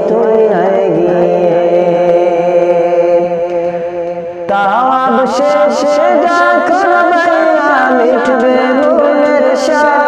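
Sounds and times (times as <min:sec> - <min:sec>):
chant-like drone: 0:00.0 - 0:10.0
man singing a winding melody: 0:00.0 - 0:10.0.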